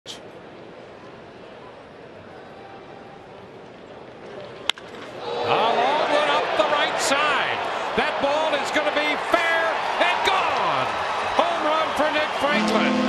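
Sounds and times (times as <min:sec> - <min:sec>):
crowd cheering and shouting: 0:05.2 - 0:13.0
crowd murmuring: 0:11.4 - 0:13.0.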